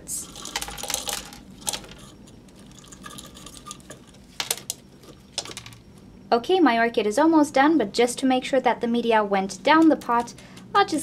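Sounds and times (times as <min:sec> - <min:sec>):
bark and pebbles rattling into pot: 0:00.1 - 0:05.9.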